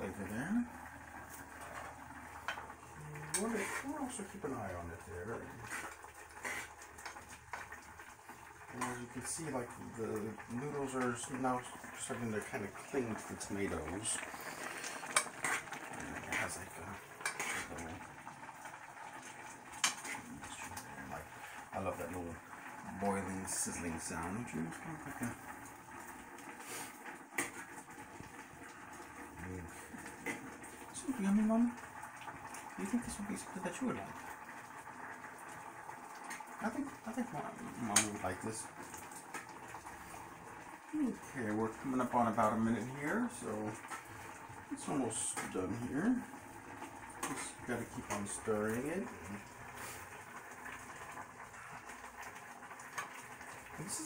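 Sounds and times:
pot simmering and sizzling: 0.0 - 54.0.

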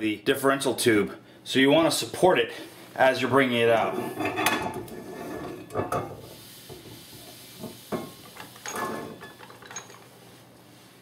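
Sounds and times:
metallic scrapes and clinks: 8.4 - 10.2.

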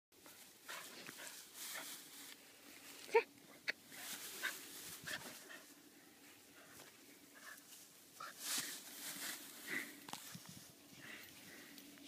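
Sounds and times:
soft rustling: 3.9 - 12.0.

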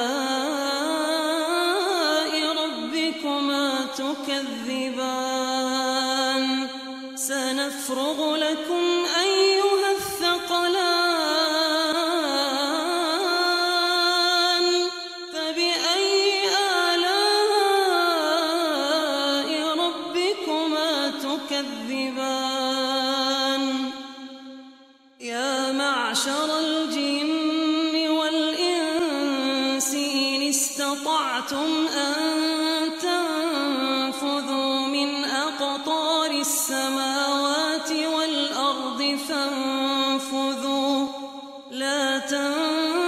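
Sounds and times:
man chanting recitation: 0.0 - 24.0, 25.2 - 43.0.

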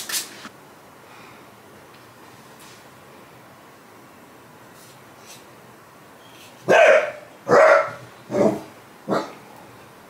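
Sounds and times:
dog barking: 6.7 - 9.4.

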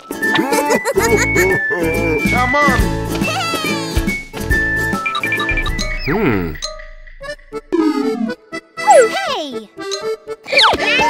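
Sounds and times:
light cartoon music: 0.0 - 11.0.

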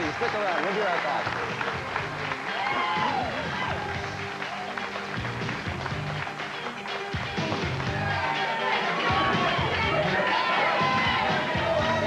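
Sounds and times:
audience cheering and clapping: 0.0 - 12.0
music playing: 0.0 - 12.0.

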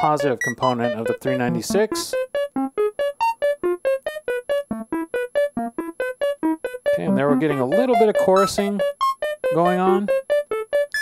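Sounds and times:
synthesizer plucked notes: 0.0 - 11.0.

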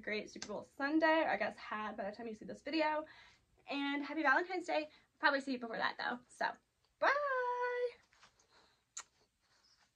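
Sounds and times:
blown kiss lip-smack: 8.9 - 9.3.

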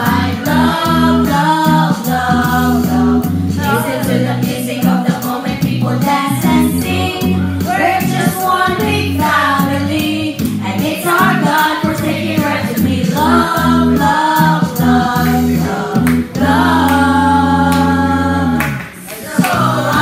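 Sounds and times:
amplified singing voice: 0.0 - 20.0
women singing together: 0.0 - 20.0.

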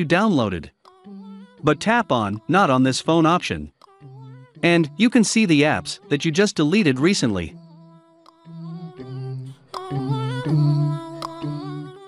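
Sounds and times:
a cappella vocal hum: 0.7 - 12.0.

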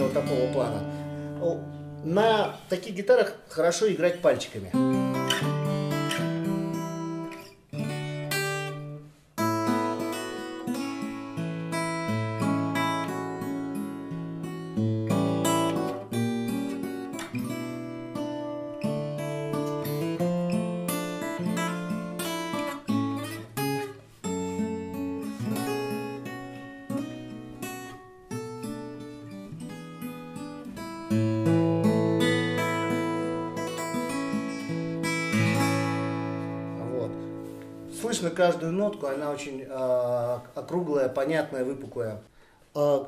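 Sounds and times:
acoustic guitar fingerstyle: 0.0 - 43.0.

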